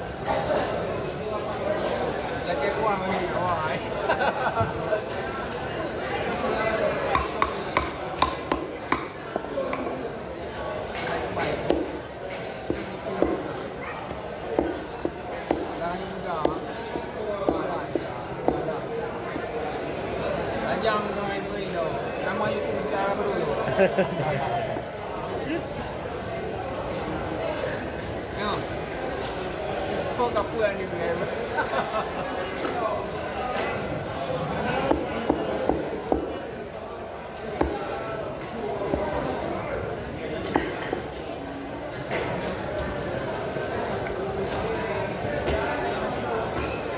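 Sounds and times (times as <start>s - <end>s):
knife chopping fish on wooden block: 7.1s - 9.4s, 14.5s - 15.7s.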